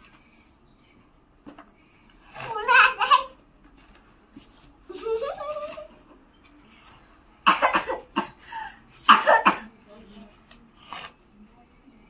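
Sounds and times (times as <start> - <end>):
person coughing: 7.4 - 8.4, 9.0 - 9.8.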